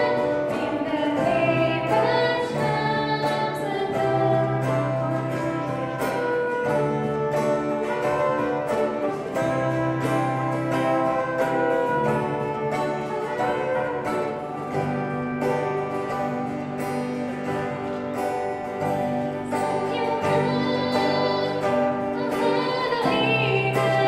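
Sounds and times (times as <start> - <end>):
acoustic guitar hymn accompaniment: 0.0 - 24.0
long held notes: 0.0 - 24.0.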